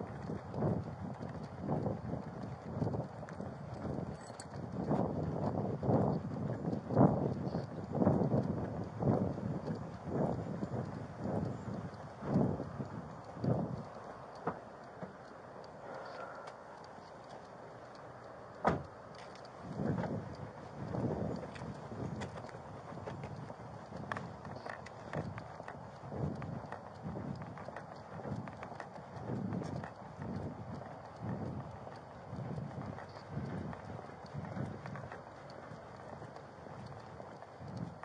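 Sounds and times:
footsteps walking: 8.0s - 38.0s.

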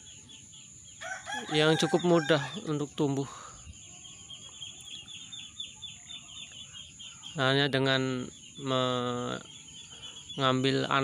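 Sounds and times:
bird chirping faintly: 0.0s - 11.0s.

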